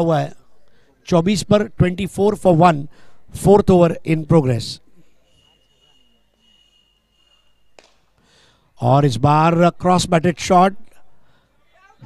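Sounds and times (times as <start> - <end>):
thin steady high tone: 4.9 - 8.1.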